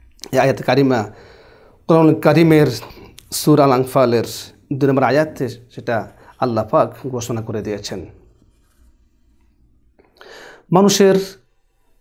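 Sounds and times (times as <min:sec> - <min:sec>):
slight small noises: 0:00.0 - 0:12.0
man speaking: 0:00.2 - 0:01.2, 0:01.9 - 0:08.2, 0:10.6 - 0:11.4.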